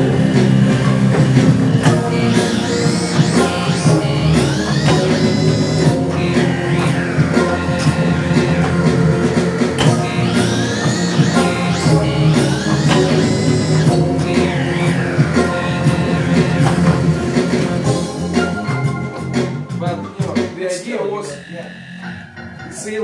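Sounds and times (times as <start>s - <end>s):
electronic synthesizer music: 0.0s - 23.0s.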